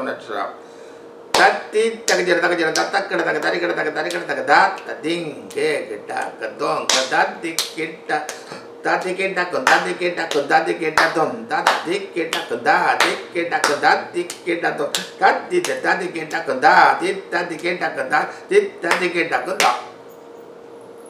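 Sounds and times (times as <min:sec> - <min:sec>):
sharp hand claps: 0:01.3 - 0:04.9, 0:06.9 - 0:08.6, 0:09.6 - 0:16.5, 0:18.9 - 0:19.9
man rapidly reciting drum syllables: 0:01.3 - 0:19.9.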